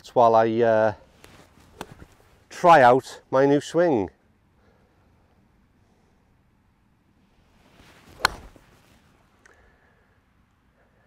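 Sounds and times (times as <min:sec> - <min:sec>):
golf club swing swish: 0:01.2 - 0:02.2, 0:07.5 - 0:09.2
golf club striking ball: 0:08.1 - 0:08.7.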